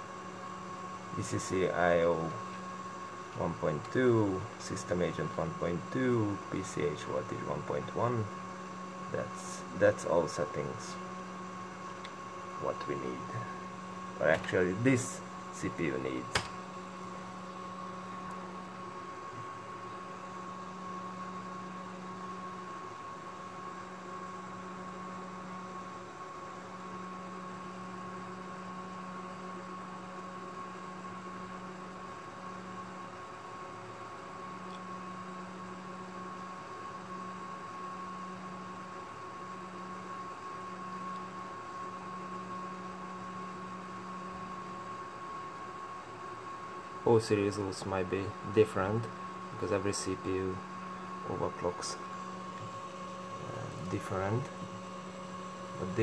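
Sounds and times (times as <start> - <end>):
computer fan hum: 0.0 - 56.0
lower hum: 47.2 - 56.0.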